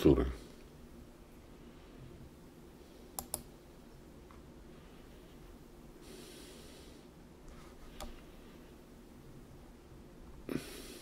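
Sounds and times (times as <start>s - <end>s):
computer mouse clicks: 3.1s - 3.5s, 7.9s - 8.2s
soft breath: 4.6s - 9.0s, 10.5s - 11.0s.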